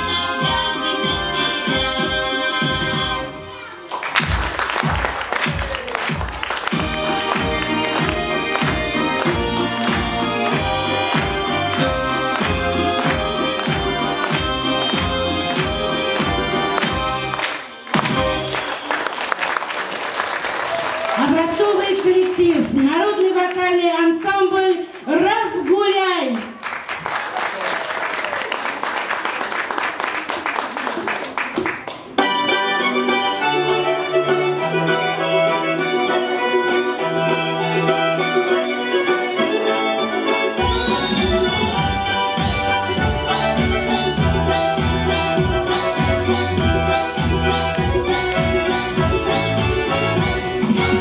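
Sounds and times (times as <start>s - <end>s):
folk-style instrumental music: 0.0s - 19.9s, 31.6s - 51.0s
audience applause: 3.8s - 23.6s, 25.0s - 32.2s
bass and drum beat: 4.2s - 17.3s, 40.7s - 51.0s.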